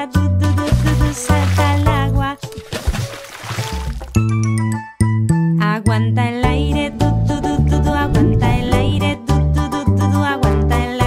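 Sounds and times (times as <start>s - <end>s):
water splashing: 0.6s - 4.2s
children's song music: 4.3s - 11.0s
wavering voice: 6.6s - 9.2s.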